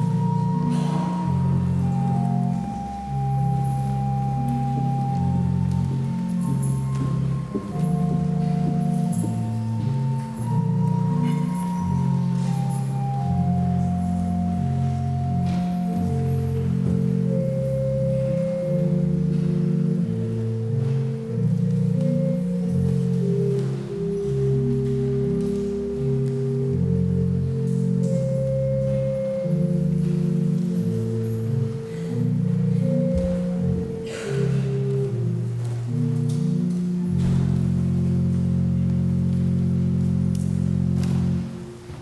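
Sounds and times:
pipe organ playing slow chords: 0.0 - 42.0.

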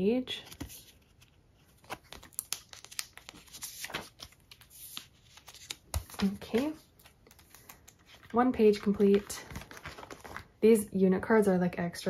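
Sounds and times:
plastic sleeve rustling: 0.4 - 10.6.

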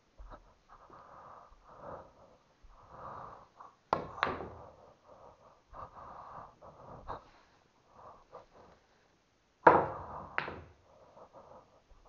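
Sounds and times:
person breathing close to microphone: 0.2 - 9.2, 10.0 - 12.0.

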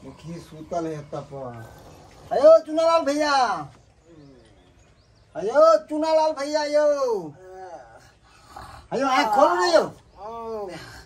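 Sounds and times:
man calling out: 8.9 - 10.8.

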